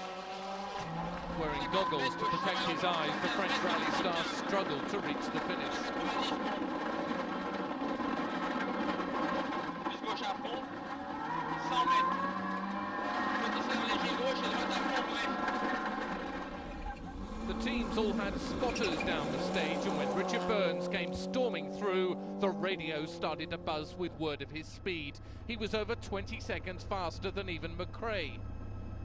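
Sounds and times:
car engine revving: 0:00.0 - 0:29.0.

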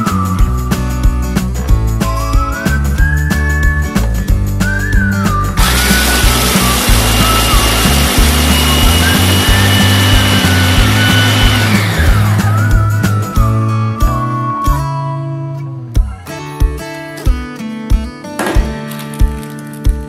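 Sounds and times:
background music with whistled tune: 0:00.0 - 0:18.0
electric food chopper grinding: 0:05.6 - 0:13.2.

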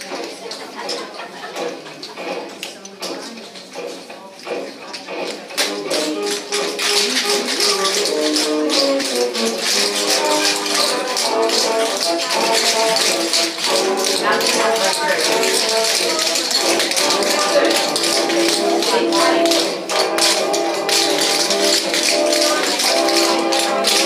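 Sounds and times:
tap shoes clicking on wooden floor: 0:00.0 - 0:24.0
upbeat swing music: 0:00.0 - 0:24.0.

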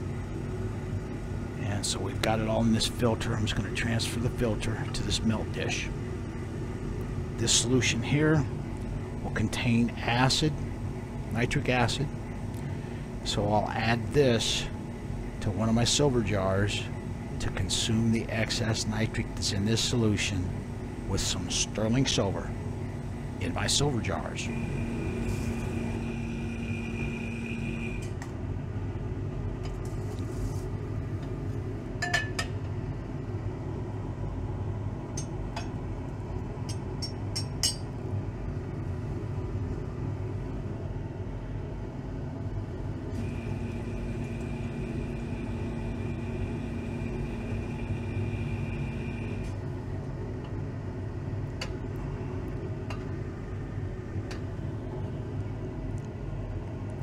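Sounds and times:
low rumble of lab equipment: 0:00.0 - 0:57.0
steady whine: 0:00.0 - 0:57.0.

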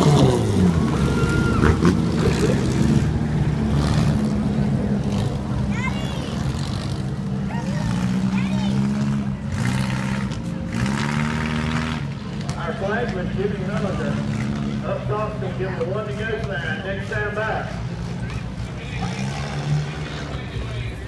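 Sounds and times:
stock car engines droning: 0:00.0 - 0:21.0.

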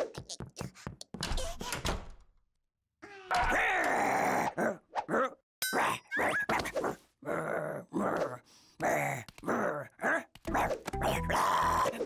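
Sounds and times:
cartoon character grunting: 0:07.2 - 0:12.0.

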